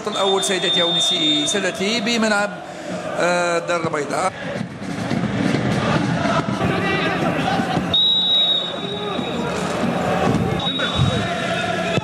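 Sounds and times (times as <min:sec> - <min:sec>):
referee whistle blasts: 0:00.0 - 0:01.8, 0:07.9 - 0:09.4, 0:10.6 - 0:11.1
voices shouting: 0:06.2 - 0:12.0.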